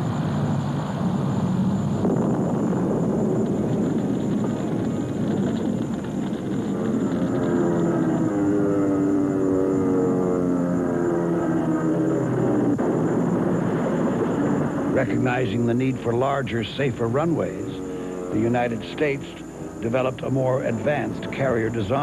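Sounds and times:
propeller aircraft engine running: 0.0s - 22.0s.

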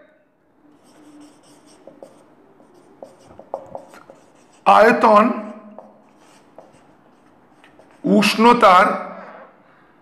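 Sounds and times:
marker pen writing on whiteboard: 0.7s - 8.6s
pen tapping: 1.4s - 4.6s, 5.7s - 6.8s.

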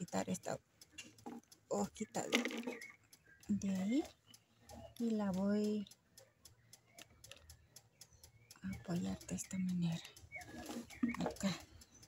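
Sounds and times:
faint light ticks: 0.0s - 12.0s.

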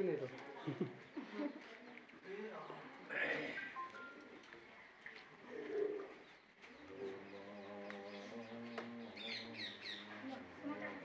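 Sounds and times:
small birds chirping: 0.1s - 11.0s.

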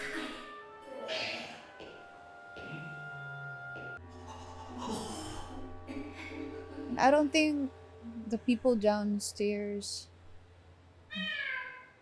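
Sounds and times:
cat meowing: 11.1s - 12.0s.

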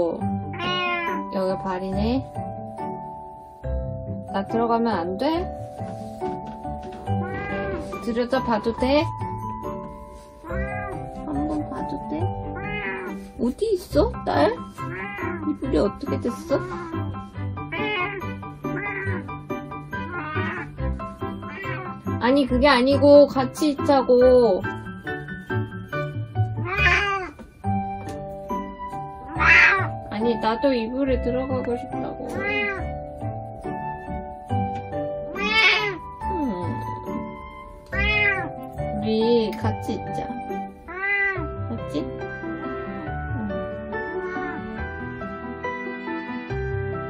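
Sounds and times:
background music: 0.0s - 47.0s
cat meowing: 0.5s - 1.4s, 7.1s - 8.0s, 10.4s - 11.2s, 12.4s - 13.3s, 14.8s - 15.6s, 16.4s - 19.3s, 19.9s - 22.0s, 26.6s - 27.4s, 29.2s - 30.0s, 32.3s - 32.9s, 35.3s - 36.2s, 37.9s - 38.6s, 40.8s - 41.5s, 43.9s - 44.9s.

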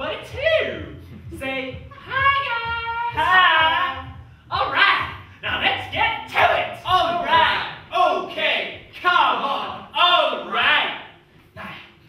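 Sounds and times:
high voice singing: 1.4s - 5.3s.

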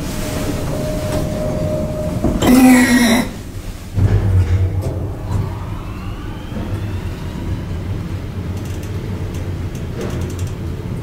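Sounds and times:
elevator machine hum: 0.0s - 11.0s
elevator whine rising in pitch: 0.0s - 11.0s.

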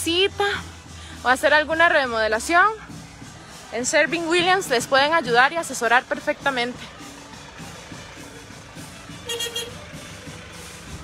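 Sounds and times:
small truck driving past: 6.7s - 11.0s
faint brass band music: 8.1s - 10.7s
short high horn toot: 9.3s - 9.8s.

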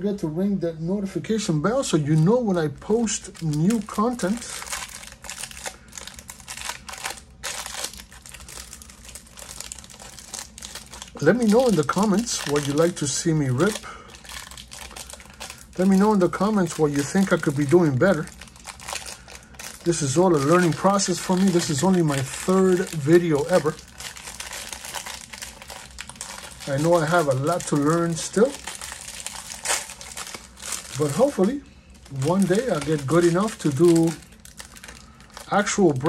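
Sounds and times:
plastic wrapping crinkling: 1.8s - 36.0s.

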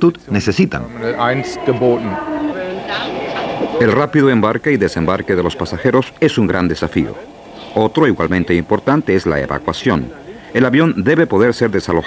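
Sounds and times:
man talking: 0.0s - 2.2s, 3.8s - 12.0s
mechanical background noise: 0.0s - 12.0s.

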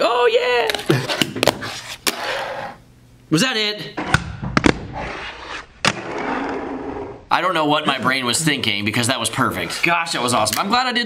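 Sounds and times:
small wheels rolling on desk: 6.0s - 7.2s.

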